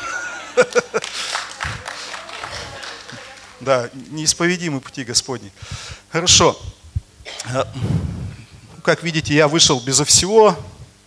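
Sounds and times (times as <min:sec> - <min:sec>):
congregation crowd reaction: 0:00.0 - 0:03.7.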